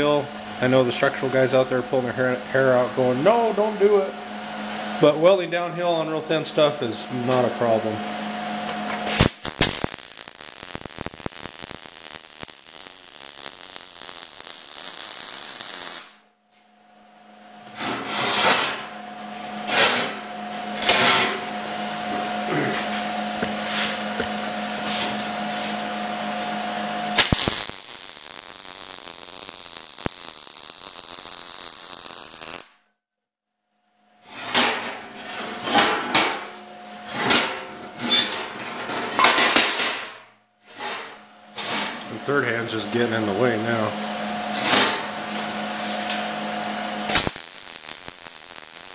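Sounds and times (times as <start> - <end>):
welding arc crackling sizzle: 9.0 - 16.2, 26.4 - 32.8, 44.5 - 48.9.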